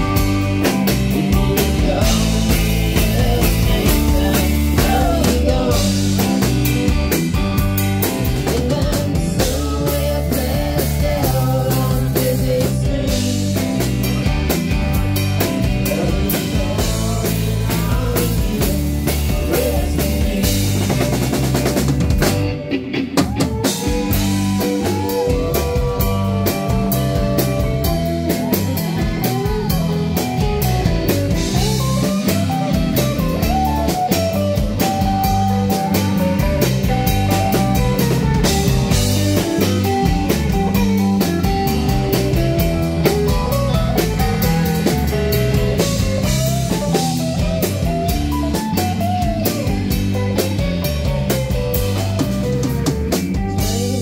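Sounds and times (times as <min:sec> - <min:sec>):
bass guitar: 0:00.0 - 0:54.0
drum kit: 0:00.0 - 0:54.0
electric guitar lead: 0:00.0 - 0:54.0.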